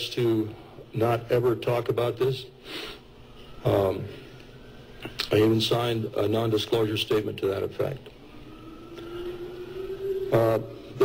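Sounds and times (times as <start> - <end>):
droning hum rising in pitch: 3.2 - 11.0.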